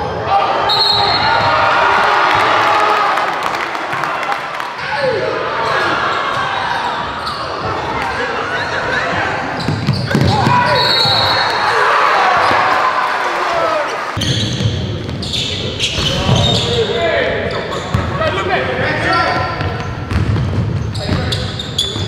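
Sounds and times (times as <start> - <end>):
spectators shouting: 10.1 - 14.2
basketball bouncing on hardwood: 19.6 - 21.2.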